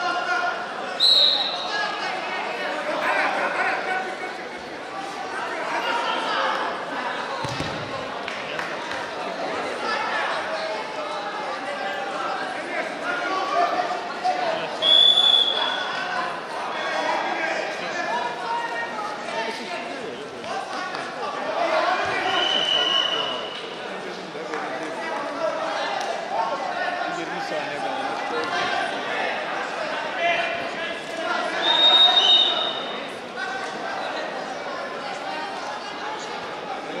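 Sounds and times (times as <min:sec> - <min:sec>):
crowd talking and shouting: 0:00.0 - 0:37.0
referee whistle blasts: 0:01.0 - 0:01.7, 0:14.8 - 0:15.8, 0:22.2 - 0:23.6, 0:31.6 - 0:33.0.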